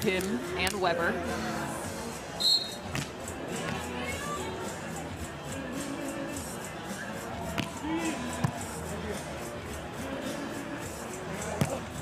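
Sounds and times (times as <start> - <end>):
crowd voices: 0.0 - 12.0
music over loudspeakers: 0.0 - 12.0
volleyball being hit: 11.6 - 11.8.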